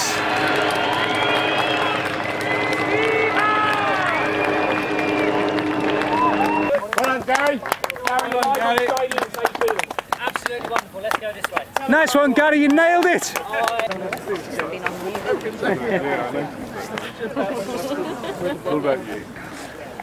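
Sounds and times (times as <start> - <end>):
steady hum: 0.0 - 6.7
people shouting: 0.0 - 6.8
crowd cheering and whooping: 0.0 - 7.0.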